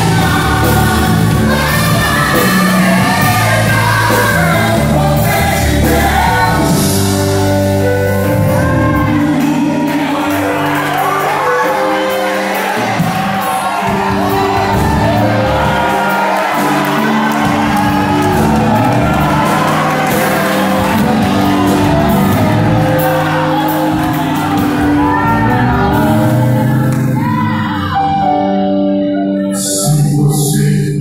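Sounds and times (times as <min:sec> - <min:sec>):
worship song over loudspeakers: 0:00.0 - 0:28.5, 0:29.5 - 0:31.0.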